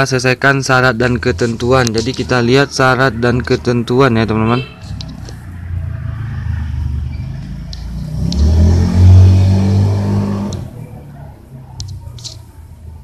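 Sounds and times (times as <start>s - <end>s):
motor vehicle engine passing by: 4.8s - 11.8s.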